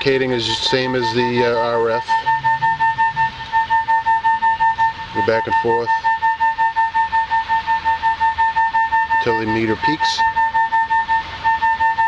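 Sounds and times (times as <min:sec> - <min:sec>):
pulsing beep tone: 0:00.4 - 0:12.0.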